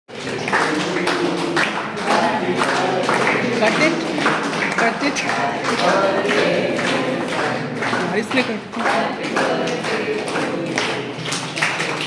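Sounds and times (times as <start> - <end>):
voices singing along: 0.1 - 11.2
people clapping in time: 0.1 - 12.0.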